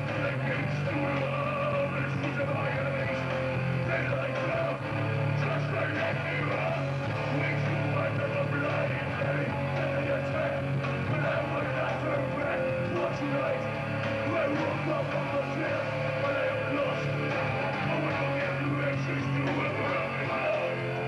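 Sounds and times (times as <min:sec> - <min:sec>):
bass guitar: 0:00.0 - 0:21.0
distorted electric guitar: 0:00.0 - 0:21.0
drums: 0:00.0 - 0:21.0.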